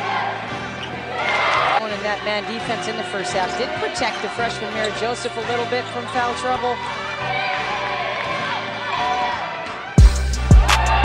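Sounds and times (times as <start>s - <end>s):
basketball arena noise: 0.0s - 11.0s
music: 0.0s - 11.0s.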